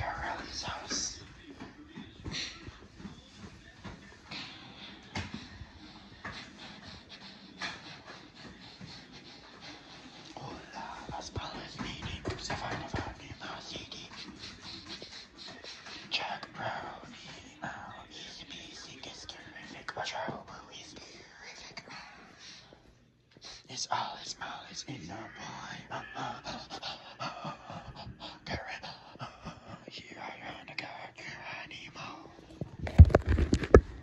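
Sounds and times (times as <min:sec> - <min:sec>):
person whispering: 0:00.0 - 0:02.7, 0:04.3 - 0:21.9, 0:23.5 - 0:33.2.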